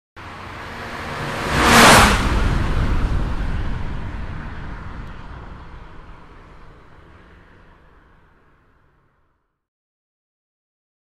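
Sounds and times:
car passing at speed: 0.2 - 9.2.

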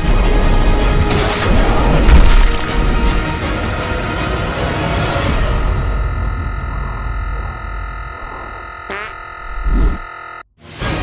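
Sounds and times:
distorted synthesizer drone: 5.3 - 10.4
rising pitch sweep: 5.6 - 10.4.

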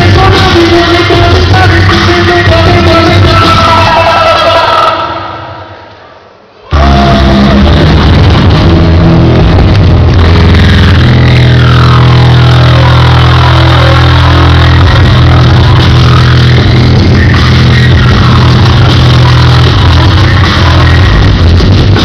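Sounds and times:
beatbox electronic music: 0.0 - 5.0, 6.7 - 22.0
deep bass drone with sweeping tones: 6.7 - 22.0.

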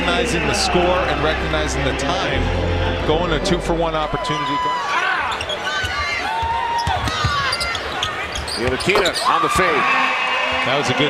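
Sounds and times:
sneakers squeaking on floor: 5.3 - 9.4.

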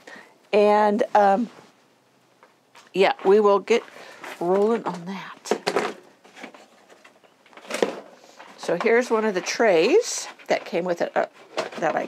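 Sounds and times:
soft rustle: 0.1 - 12.0.

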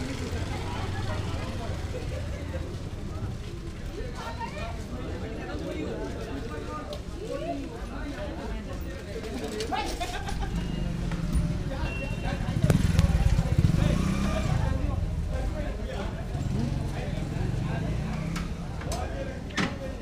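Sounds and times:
small vehicle engine running: 0.0 - 3.1, 10.4 - 15.4
people chattering: 0.0 - 20.0.

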